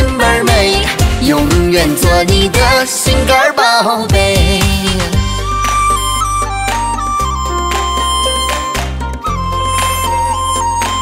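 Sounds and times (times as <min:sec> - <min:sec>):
person singing pop song: 0:00.0 - 0:05.4.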